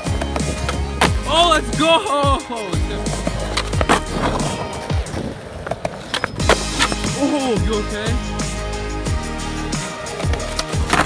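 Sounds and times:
music: 0.0 - 11.0
skateboard rolling on concrete: 0.0 - 11.0
skateboard clacks and knocks: 10.2 - 11.0.

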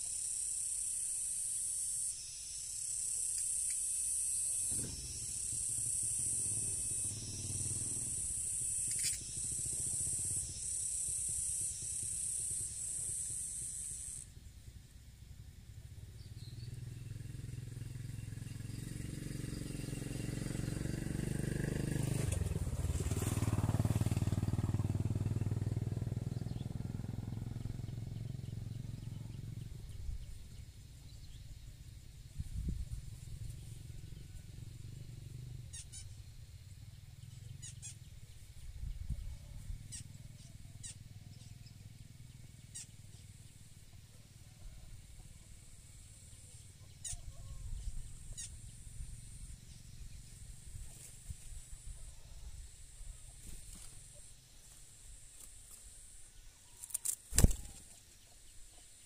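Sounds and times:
motorcycle passing by: 4.1 - 52.0.

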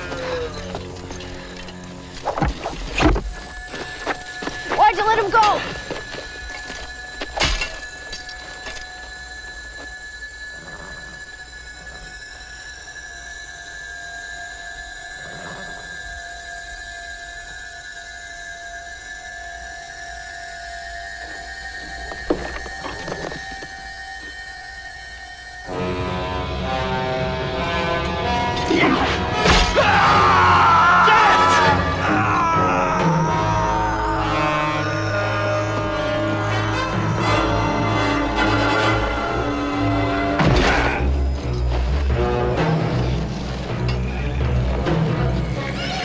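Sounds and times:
eerie high-pitched horror music: 0.0 - 46.0.

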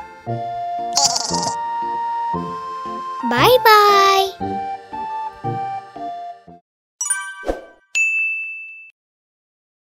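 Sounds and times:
bell-like chime chord: 7.0 - 9.0
high ding: 7.0 - 9.0.

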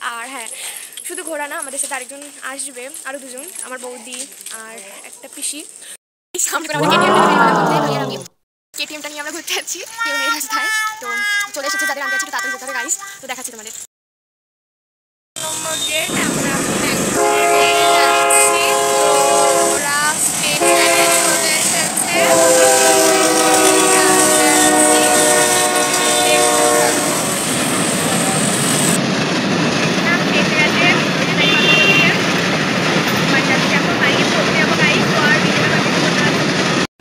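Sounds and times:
faint voices: 6.7 - 8.3, 15.4 - 27.0
steady rumbling noise: 15.4 - 36.8
loud horn blasts: 17.1 - 27.4, 31.3 - 32.2.

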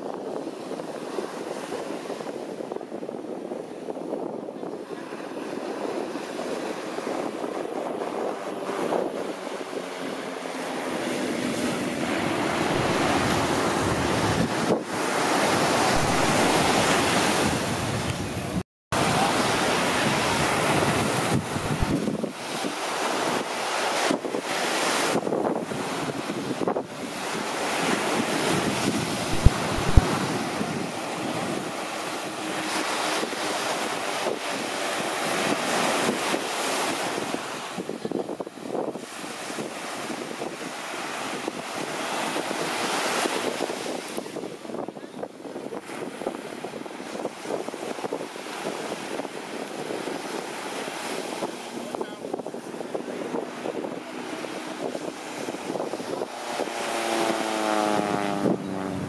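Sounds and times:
surf washing: 0.0 - 59.0
wind buffeting microphone: 0.0 - 59.0
short low thumps: 29.3 - 30.1.

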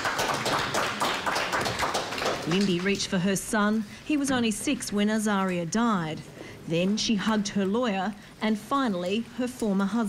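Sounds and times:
small crowd applauding: 0.0 - 3.1.

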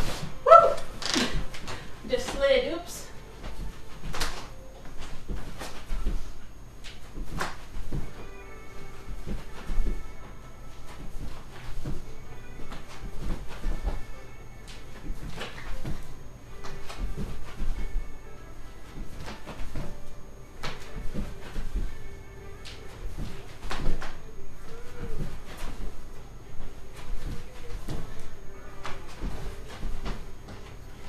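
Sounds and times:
feet shuffling on floor: 0.0 - 31.0.

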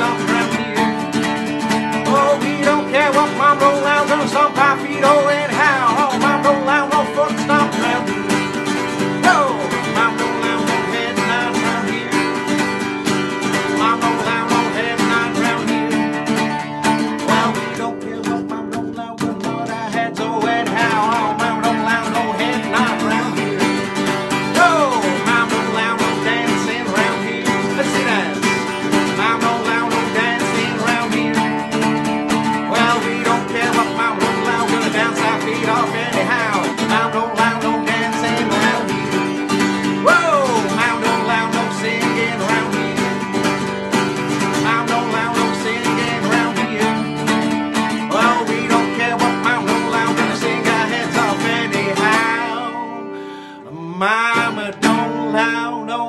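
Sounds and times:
acoustic guitar strumming: 0.0 - 56.0.

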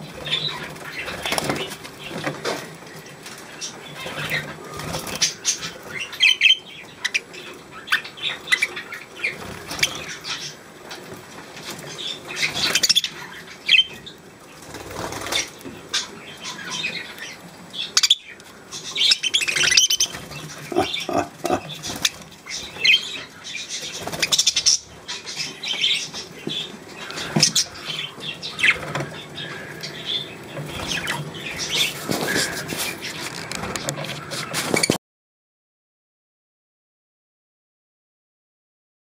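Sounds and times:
budgerigar chirps: 20.7 - 22.1.

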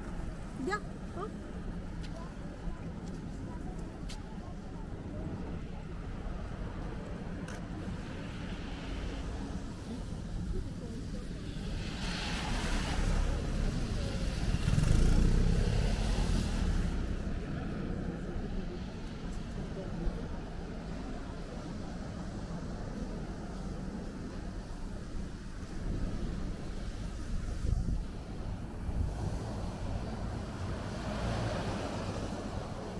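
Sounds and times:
city traffic hum: 0.0 - 32.9
car tyres hissing on wet road: 7.9 - 17.4, 26.2 - 32.9.

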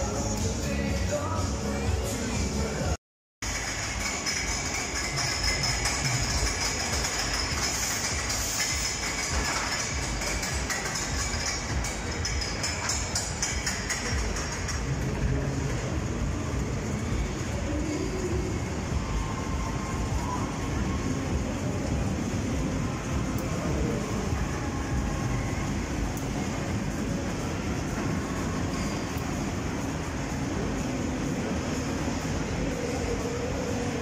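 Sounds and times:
music playing: 0.0 - 34.0.

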